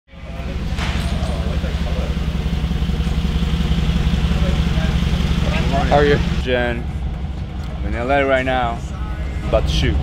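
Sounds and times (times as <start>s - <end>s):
car engine idling: 0.1s - 10.0s.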